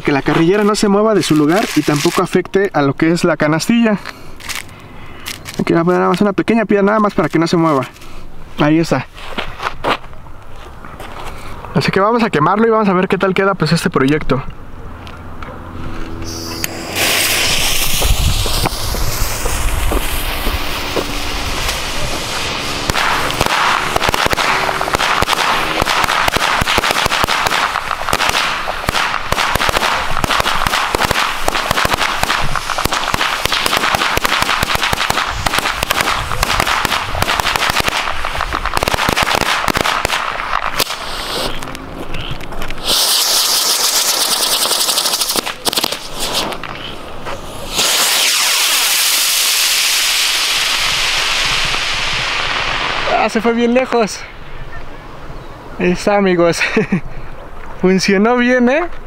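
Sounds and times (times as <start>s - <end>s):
spinning firework hissing: 16.0s - 54.4s
firecrackers crackling bangs: 16.3s - 41.8s, 42.5s - 53.9s.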